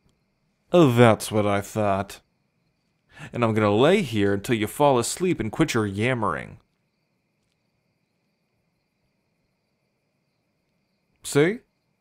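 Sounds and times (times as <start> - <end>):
faint crickets chirping: 0.0 - 12.0.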